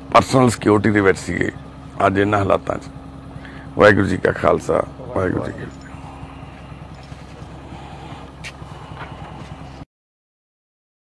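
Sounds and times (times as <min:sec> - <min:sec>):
engine idling hum: 0:00.0 - 0:09.9.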